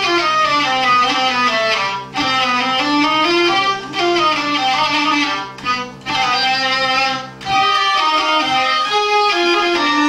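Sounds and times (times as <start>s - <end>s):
hurdy-gurdies playing melody over drones: 0.0s - 10.0s.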